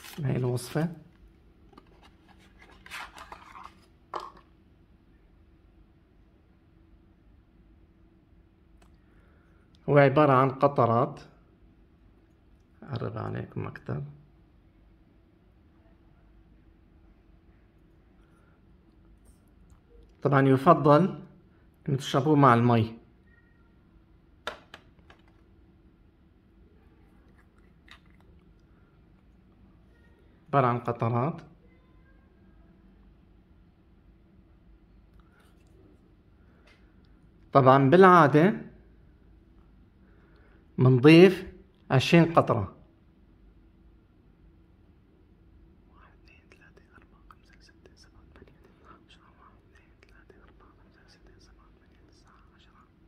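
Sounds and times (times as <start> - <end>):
faint whispering: 45.8 - 53.0.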